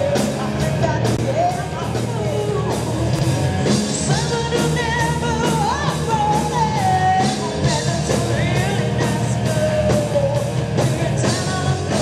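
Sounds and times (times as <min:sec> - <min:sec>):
live rock band playing: 0:00.0 - 0:12.0
woman singing: 0:00.0 - 0:12.0.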